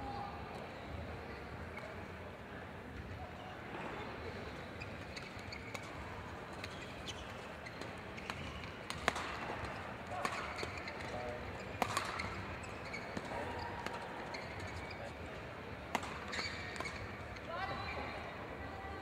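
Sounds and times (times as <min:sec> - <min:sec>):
sports hall background: 0:00.0 - 0:19.0
racket hitting shuttlecock: 0:07.7 - 0:14.8, 0:15.9 - 0:17.2.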